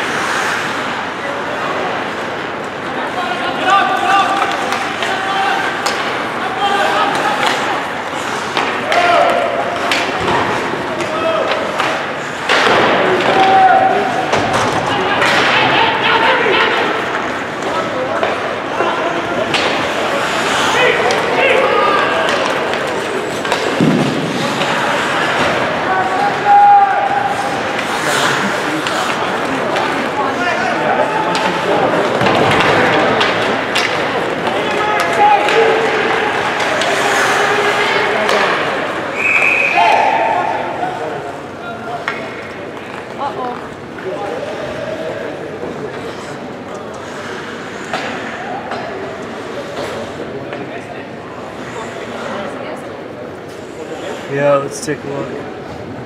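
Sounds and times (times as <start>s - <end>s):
skates scraping on ice: 0.0s - 3.2s, 19.0s - 39.2s, 42.8s - 48.4s
players shouting: 3.0s - 42.2s.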